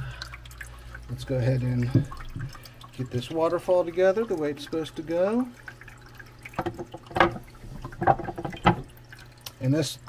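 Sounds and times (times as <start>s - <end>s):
water trickling: 0.0s - 10.0s.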